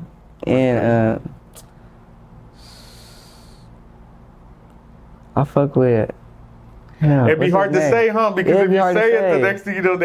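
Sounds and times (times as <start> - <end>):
low room hum: 0.0 - 10.0
breath through the nose: 2.5 - 3.7.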